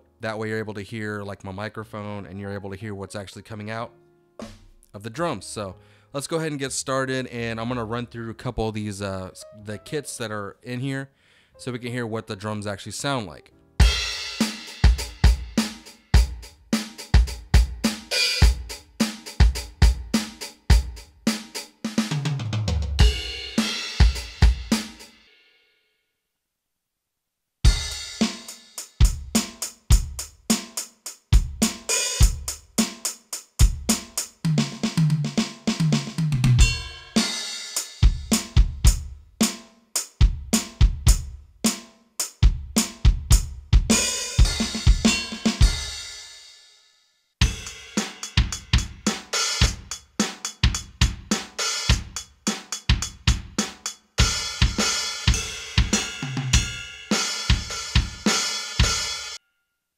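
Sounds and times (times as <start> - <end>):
electronic drum groove: 4.4 - 4.8, 13.8 - 25.1, 27.7 - 46.2, 47.4 - 59.3.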